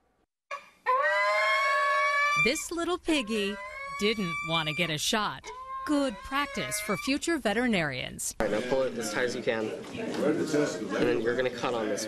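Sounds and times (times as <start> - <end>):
pig squealing: 0.5 - 7.4.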